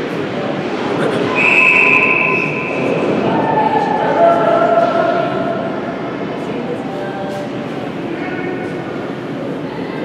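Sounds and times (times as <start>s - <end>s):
murmur of arena crowd: 0.0s - 10.0s
referee's whistle blast: 1.4s - 2.9s.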